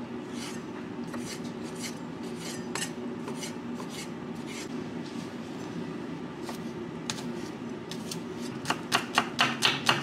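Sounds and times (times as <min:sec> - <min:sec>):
knife chopping on wooden board: 0:07.9 - 0:10.0.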